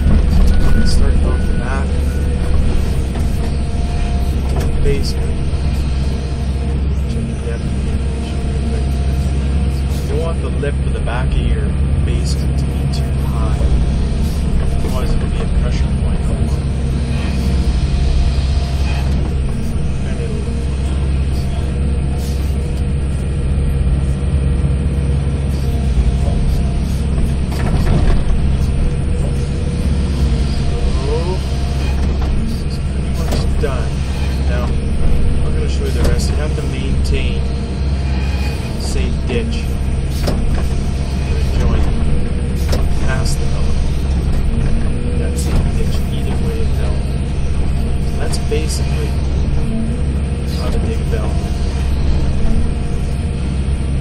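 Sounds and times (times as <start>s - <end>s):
diesel engine running: 0.0s - 54.0s.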